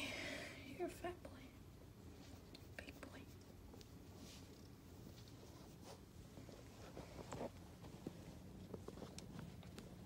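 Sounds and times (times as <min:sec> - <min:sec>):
faint soft sounds: 0:00.0 - 0:10.0.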